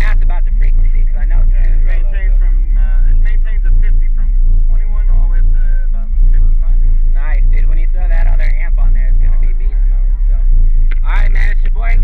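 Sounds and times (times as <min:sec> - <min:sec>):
bass-heavy music through subwoofers: 0:00.0 - 0:12.0
voice: 0:00.0 - 0:12.0.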